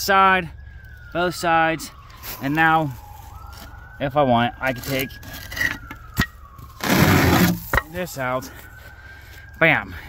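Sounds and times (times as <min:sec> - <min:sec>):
concrete block scraping on wood: 0:06.8 - 0:07.9.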